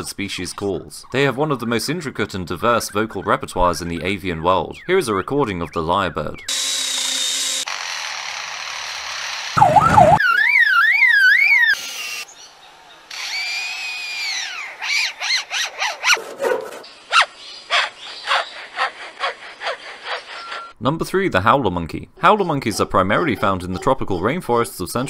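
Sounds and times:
warbling alarm-like tone: 0:09.6 - 0:11.8.

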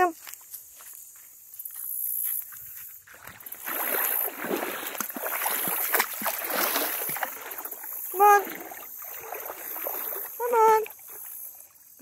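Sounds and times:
dog splashing in shallow water: 0:03.1 - 0:11.6.

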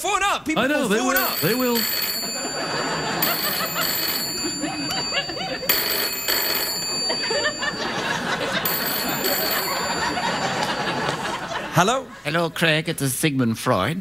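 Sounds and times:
telephone ringing: 0:01.0 - 0:11.8
laughter: 0:02.3 - 0:05.7, 0:07.0 - 0:12.2.

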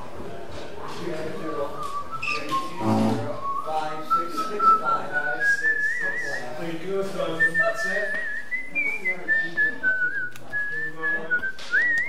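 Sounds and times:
person whistling a tune: 0:01.8 - 0:06.6, 0:07.3 - 0:12.0.

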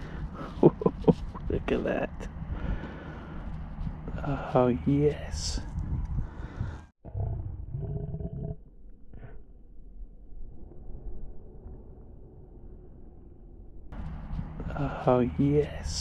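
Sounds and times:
low rumble: 0:00.0 - 0:16.0
slowed deep voice-like sound: 0:04.0 - 0:05.8, 0:14.6 - 0:16.0.

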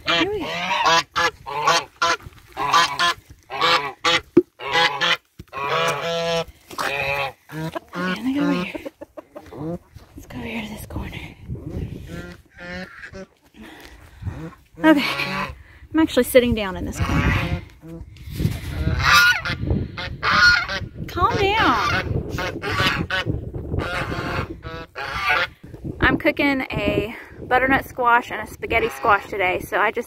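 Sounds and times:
geese honking: 0:00.0 - 0:09.9, 0:12.0 - 0:13.3, 0:21.6 - 0:25.5.

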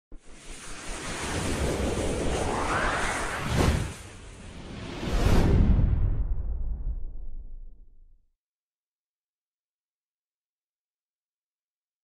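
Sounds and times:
rushing whoosh: 0:00.2 - 0:07.7
low rumble: 0:01.5 - 0:08.2.

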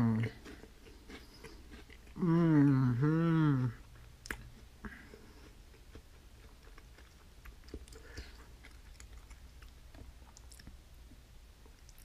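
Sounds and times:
chewing and mouth sounds: 0:00.0 - 0:12.0.

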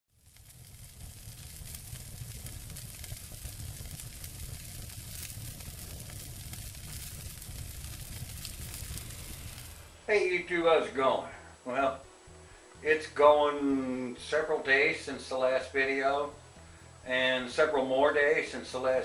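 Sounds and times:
fire crackling and sizzling: 0:00.1 - 0:19.0
low rumble: 0:00.2 - 0:10.1.

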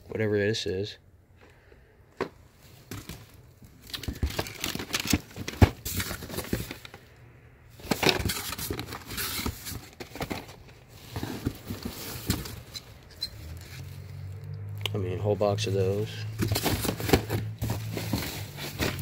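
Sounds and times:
cardboard boxes rustling and knocking: 0:02.2 - 0:07.0, 0:07.8 - 0:13.8, 0:15.9 - 0:19.0.

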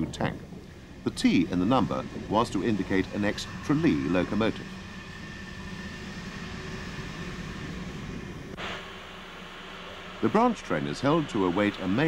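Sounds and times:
film soundtrack hiss: 0:00.0 - 0:12.0
low hum: 0:00.0 - 0:12.0.

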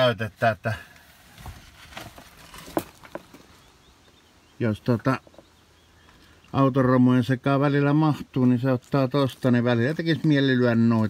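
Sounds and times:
knocks and clicks on gravel: 0:01.4 - 0:03.7.

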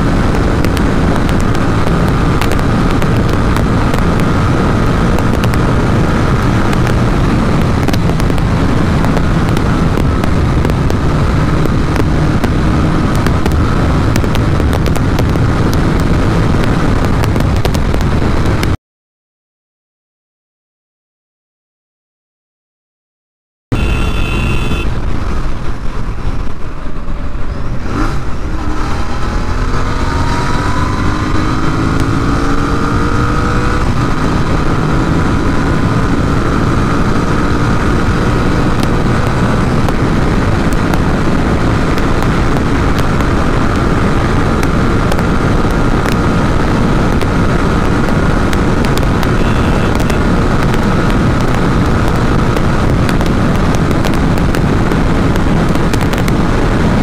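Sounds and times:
motorcycle engine at full throttle: 0:00.0 - 0:18.8, 0:23.8 - 0:57.0
wind noise on microphone: 0:00.0 - 0:18.8, 0:23.7 - 0:57.0.

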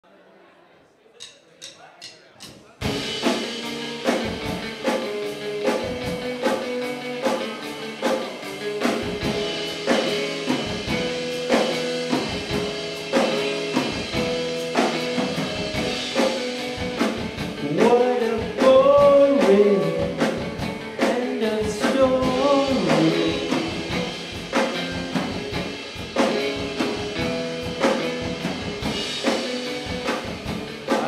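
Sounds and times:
drum kit beat: 0:01.2 - 0:31.0
acoustic guitar: 0:03.7 - 0:31.0.

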